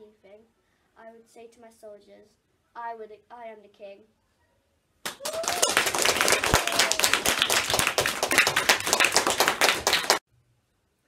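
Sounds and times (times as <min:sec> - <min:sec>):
group of people clapping: 0:05.0 - 0:10.2.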